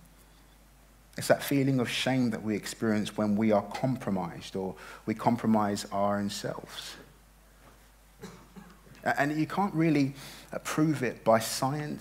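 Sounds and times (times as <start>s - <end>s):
soft throat clearing: 8.2s - 8.9s.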